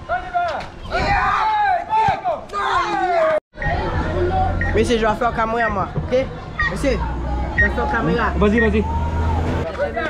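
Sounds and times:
children shouting: 0.9s - 4.7s, 6.3s - 10.0s.

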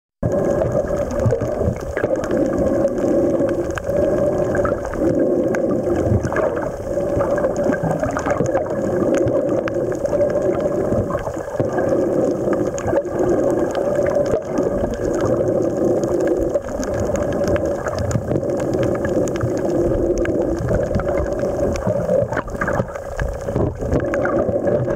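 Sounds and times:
fluctuating underwater rumble: 0.2s - 24.9s
underwater droning hum: 0.2s - 24.9s
faint clicks: 0.3s - 24.9s.

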